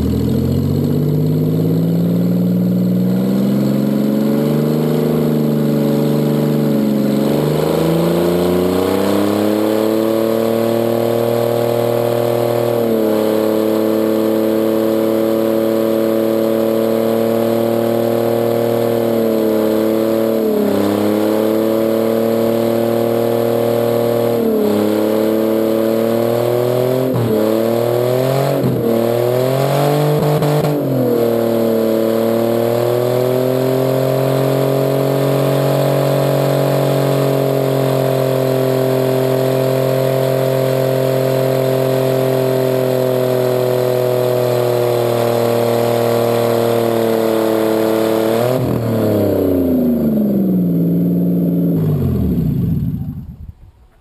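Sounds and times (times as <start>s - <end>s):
car engine at high revs: 0.0s - 54.0s
tire spinning: 0.0s - 54.0s.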